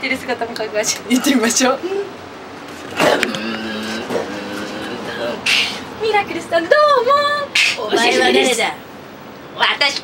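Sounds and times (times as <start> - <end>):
human beatbox sweeping into low hum: 3.0 - 5.9.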